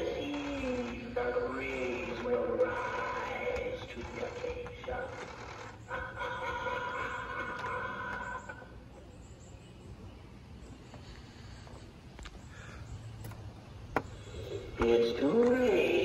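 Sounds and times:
recorded voice from speaker: 0.0 - 5.4, 14.7 - 16.0.

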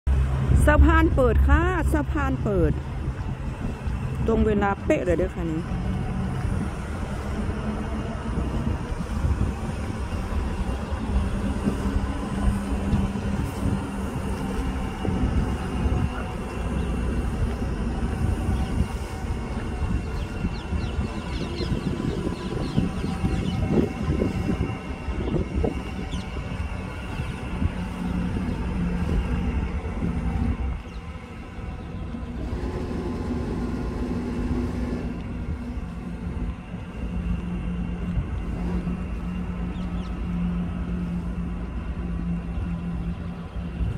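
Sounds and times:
mechanical drone with hum: 0.0 - 43.9.

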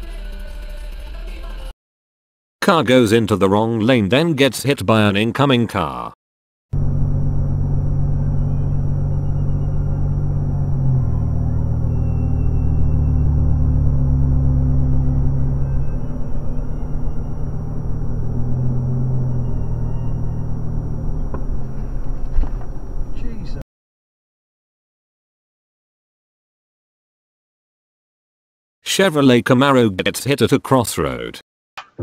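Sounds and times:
car driving rumble from inside cabin: 6.8 - 23.6
car crash bang: 21.0 - 23.4.

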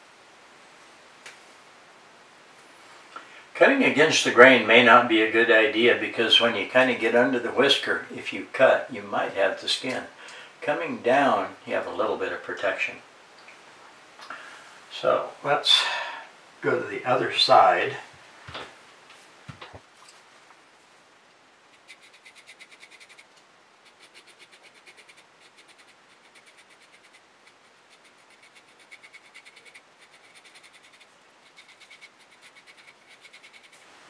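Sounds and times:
knife blade scraping whiskers: 23.9 - 33.8.

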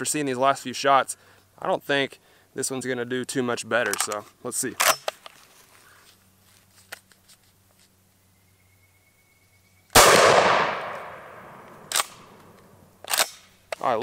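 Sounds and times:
shotgun blast: 10.0 - 12.4.

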